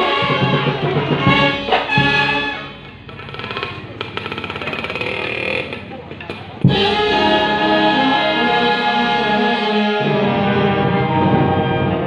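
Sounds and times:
brass band low held notes: 0.0s - 2.8s, 6.6s - 12.0s.

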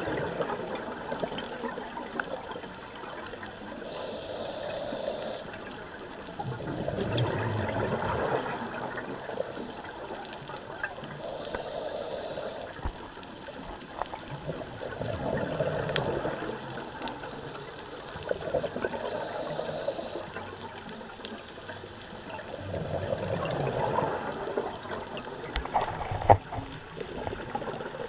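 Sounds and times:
diver's bubbles gurgling: 0.0s - 10.0s, 10.8s - 20.8s, 22.4s - 28.0s
underwater hiss: 3.7s - 5.9s, 7.7s - 10.0s, 11.1s - 12.9s, 14.9s - 20.4s
faint clicks: 8.5s - 22.8s.

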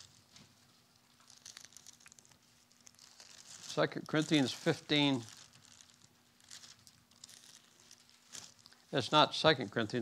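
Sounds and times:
thin pages rustling: 0.0s - 8.9s
faint steady hum: 0.0s - 10.0s.

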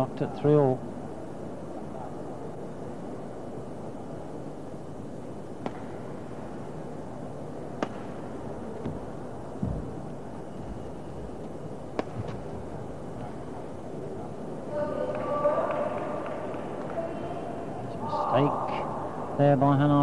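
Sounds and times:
racket hitting shuttlecock: 5.6s - 6.0s, 7.8s - 8.2s, 11.9s - 12.4s
low thump: 9.6s - 9.9s.

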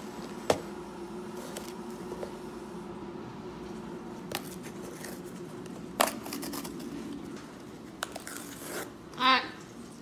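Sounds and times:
cardboard tearing: 8.0s - 9.0s.

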